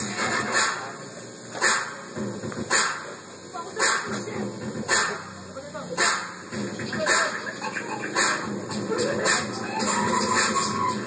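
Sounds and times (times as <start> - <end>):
dance music over sound system: 0.0 - 1.0, 1.6 - 11.0.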